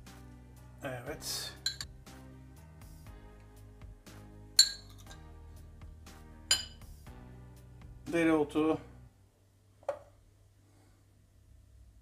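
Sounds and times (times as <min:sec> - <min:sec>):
quiet background music: 0:00.0 - 0:10.3
metal spoon clinking on dishes: 0:01.6 - 0:01.9, 0:04.6 - 0:05.1, 0:06.5 - 0:06.8.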